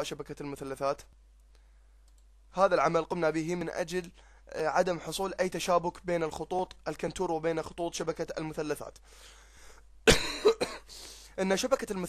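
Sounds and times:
man coughing: 10.0s - 10.9s.

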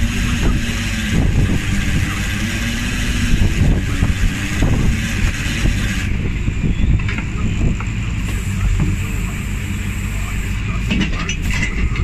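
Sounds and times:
boat engine running: 0.0s - 12.0s
trap hauler hauling rope: 0.0s - 12.0s
wind hiss: 0.3s - 7.0s.

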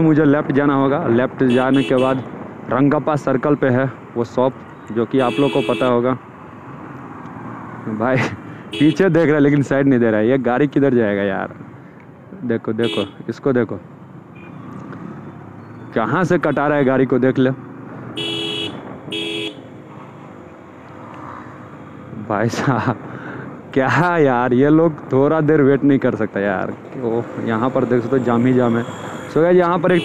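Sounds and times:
traffic noise: 0.0s - 30.0s
vehicle horn honking: 1.5s - 2.2s, 5.2s - 6.0s, 8.7s - 9.1s, 12.8s - 13.2s, 18.2s - 19.6s.

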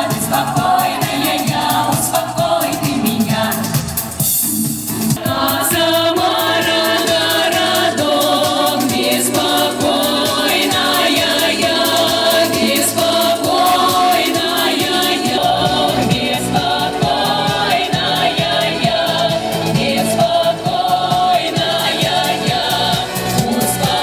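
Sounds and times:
women singing amplified: 0.0s - 4.2s, 5.2s - 24.0s
musical backing track: 0.0s - 24.0s
steady beat: 0.0s - 24.0s.

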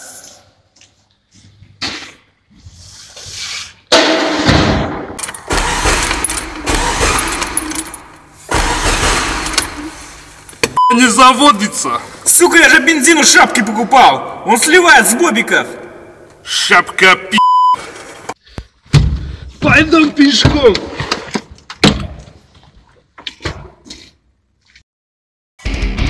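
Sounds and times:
censor beep: 10.8s - 11.2s, 17.4s - 17.8s
person speaking: 10.8s - 17.4s.

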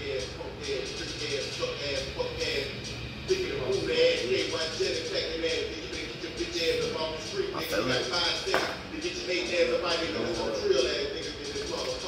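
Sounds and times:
man rapping over a beat: 0.0s - 12.0s.

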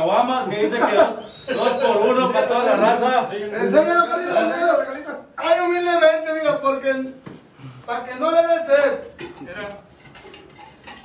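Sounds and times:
metallic clinks and scrapes: 9.4s - 11.0s.

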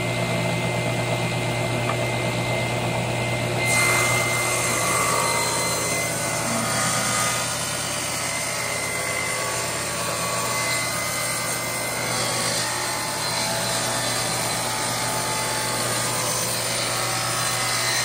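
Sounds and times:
table saw motor hum: 0.0s - 18.0s
saw blade cutting wood: 3.6s - 18.0s.

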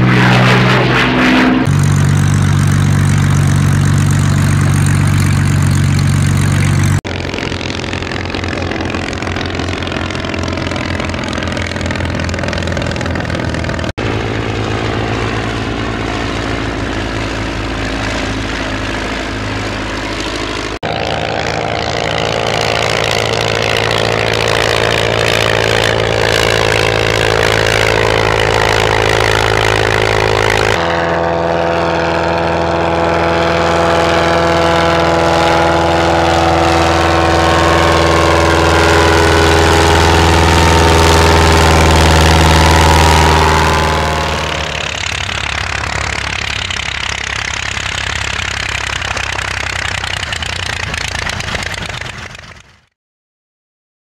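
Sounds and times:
propeller plane engine droning: 0.0s - 52.9s.

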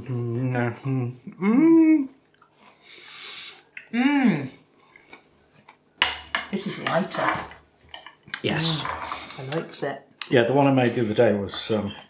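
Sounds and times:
appreciative hums: 0.0s - 2.2s, 3.6s - 4.6s
person eating: 1.6s - 5.8s
soft hissy sound: 6.5s - 12.0s.

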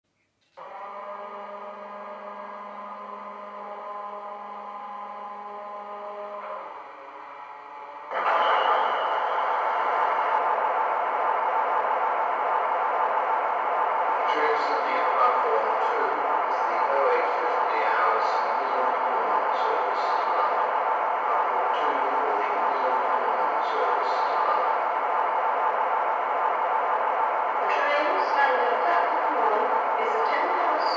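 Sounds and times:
model locomotive hum: 0.6s - 30.9s
diesel engine running: 2.0s - 30.9s.

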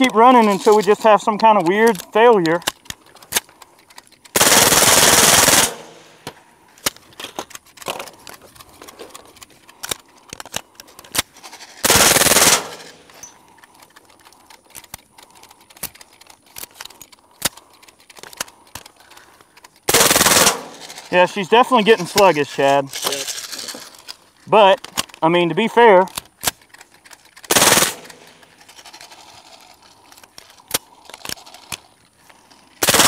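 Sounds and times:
small clicks: 0.0s - 4.4s, 13.0s - 19.9s, 21.8s - 32.8s
suppressed gunfire bursts: 4.3s - 6.2s, 11.3s - 13.1s, 19.9s - 21.2s, 27.4s - 28.6s, 32.8s - 33.0s.

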